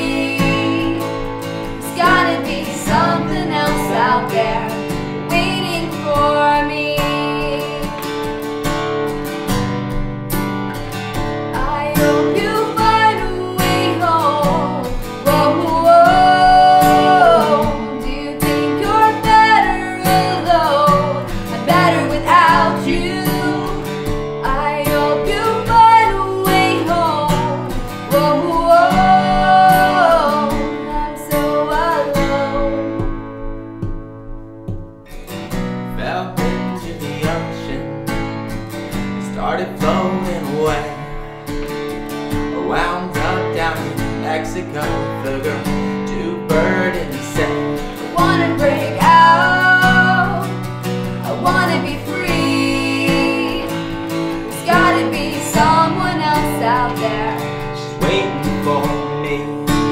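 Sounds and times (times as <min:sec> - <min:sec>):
woman singing: 0:00.0 - 0:08.2, 0:11.5 - 0:33.6, 0:45.5 - 0:59.9
strummed acoustic guitar: 0:00.0 - 0:59.9.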